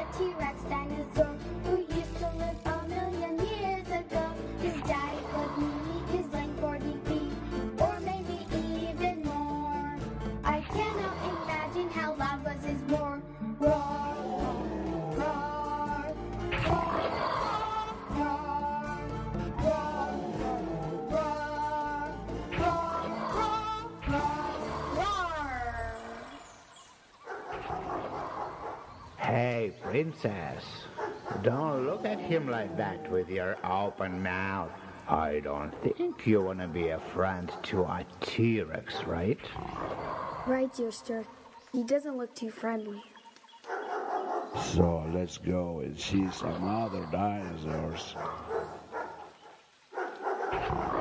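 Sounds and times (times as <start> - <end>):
song ending: 7.5 - 25.0
dinosaur roar sound effect: 13.7 - 18.6, 19.7 - 26.2, 27.5 - 28.9, 39.4 - 40.8, 50.5 - 51.0
dog barking: 27.2 - 29.0, 30.8 - 31.6, 43.7 - 44.7, 47.3 - 50.8.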